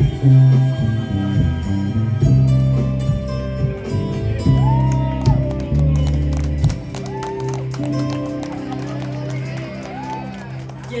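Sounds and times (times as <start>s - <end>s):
live band music: 0.0s - 10.3s
held keyboard chords: 0.0s - 11.0s.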